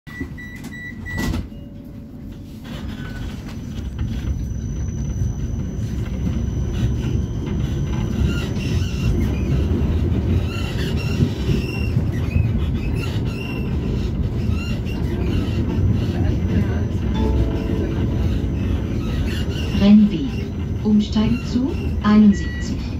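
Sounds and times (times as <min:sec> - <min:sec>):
tram wheels rumbling: 0:01.8 - 0:22.9
pitched chime: 0:17.2 - 0:20.7.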